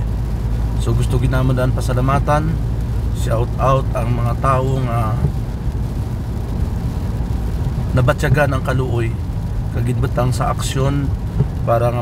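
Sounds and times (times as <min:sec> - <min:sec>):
low engine and tyre rumble: 0:00.0 - 0:12.0
rain and road spray hiss: 0:00.0 - 0:12.0.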